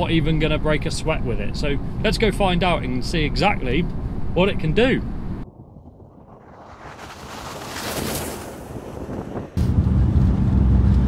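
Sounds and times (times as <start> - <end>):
diesel engine low drone: 0.0 - 5.7, 9.5 - 11.0
tyres on snow: 6.7 - 9.6.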